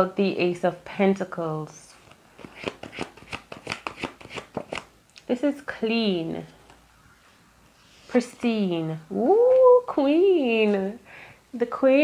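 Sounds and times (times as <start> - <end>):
cards being shuffled: 2.0 - 4.9.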